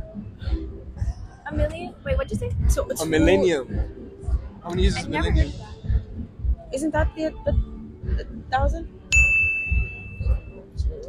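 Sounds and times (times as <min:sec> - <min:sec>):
bright bell-like ding: 0:09.1 - 0:10.3.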